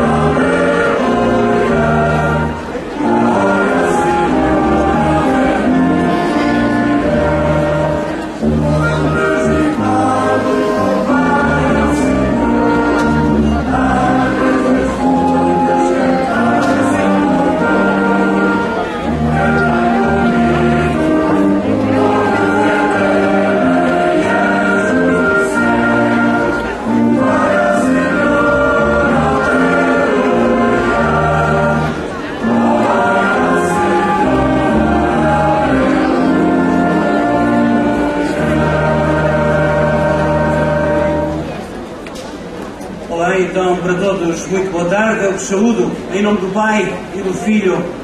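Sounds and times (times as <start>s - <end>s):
choir singing a hymn: 0.0s - 41.7s
low brass accompaniment: 0.0s - 42.0s.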